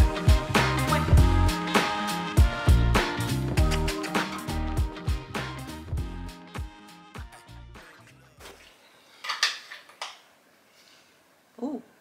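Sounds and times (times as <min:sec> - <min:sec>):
background music: 0:00.0 - 0:08.8
kitchen dishware clinking: 0:09.2 - 0:10.2.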